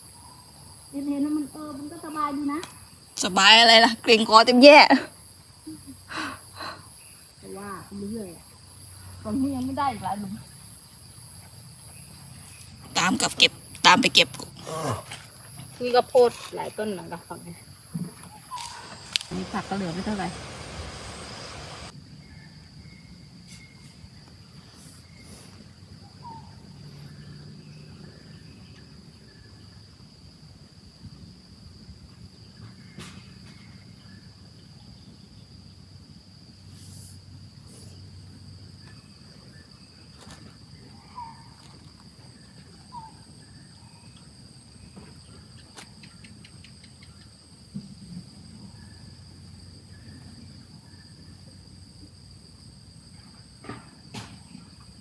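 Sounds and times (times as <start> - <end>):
higher insect trill: 0.0 - 55.0
insect chirps and ticks: 0.0 - 55.0
insect high-pitched trill: 0.0 - 55.0.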